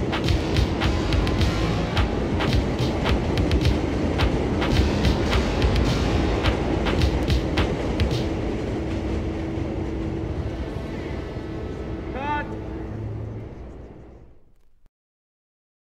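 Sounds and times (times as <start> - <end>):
rumbling noise wash: 0.0 - 14.8.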